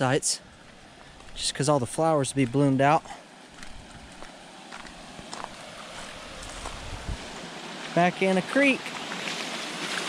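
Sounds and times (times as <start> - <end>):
outdoor background hiss: 0.0 - 10.0
footsteps on gravel: 0.5 - 8.0.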